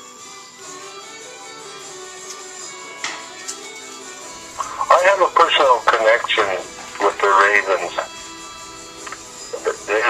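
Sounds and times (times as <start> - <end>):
faint music: 0.0 - 10.0
raven calls: 4.4 - 10.0.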